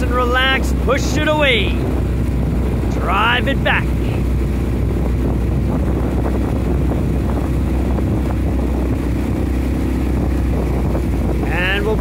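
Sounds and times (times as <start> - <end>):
outboard motor humming: 0.0 - 12.0.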